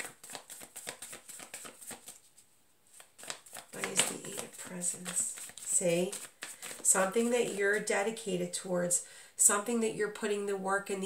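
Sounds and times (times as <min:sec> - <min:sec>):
cards slapping and flicking: 0:00.0 - 0:07.6.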